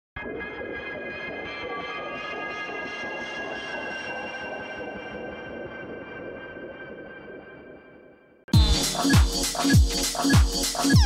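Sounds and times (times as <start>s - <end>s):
electronic drone music: 0.2s - 7.5s, 8.5s - 11.0s.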